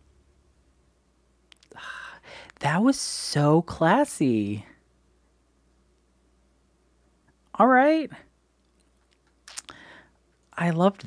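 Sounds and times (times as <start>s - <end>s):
person speaking: 1.6s - 4.8s, 7.5s - 8.4s, 10.5s - 11.0s
breathy sound: 9.6s - 10.2s.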